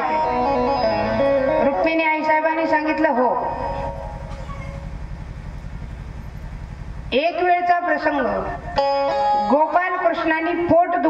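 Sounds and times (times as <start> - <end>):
low fluttering rumbling hum: 0.0 - 11.0
woman speaking: 1.6 - 3.6, 7.1 - 8.6, 9.5 - 11.0.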